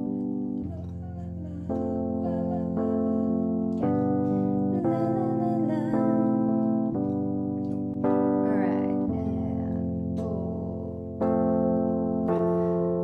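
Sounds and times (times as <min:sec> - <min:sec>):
keyboard playing slow chords: 0:00.0 - 0:13.0.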